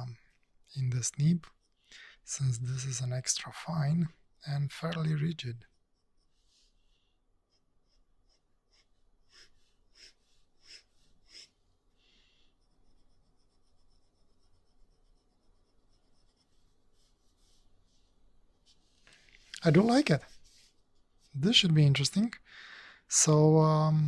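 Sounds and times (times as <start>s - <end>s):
pen nib strokes on paper: 7.5s - 11.6s, 12.6s - 17.6s.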